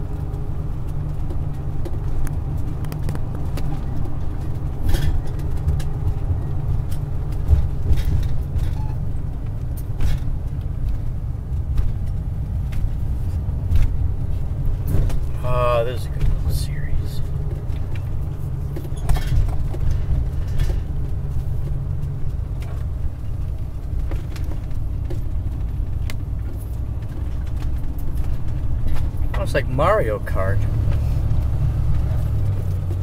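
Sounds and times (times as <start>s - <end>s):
car engine and tyres rumbling: 0.0s - 33.0s
person speaking: 15.3s - 17.4s, 29.4s - 30.8s.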